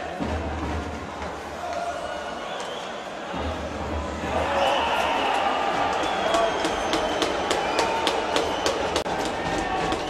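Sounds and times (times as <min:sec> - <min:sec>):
crowd din: 0:00.0 - 0:10.0.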